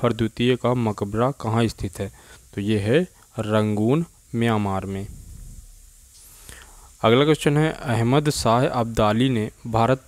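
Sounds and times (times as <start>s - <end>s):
person speaking: 0.0s - 5.4s
faint background hum and hiss: 0.0s - 10.0s.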